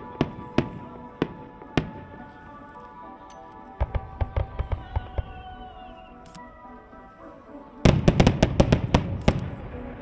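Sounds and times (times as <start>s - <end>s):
fireworks bursting: 3.8s - 6.2s, 7.9s - 10.0s.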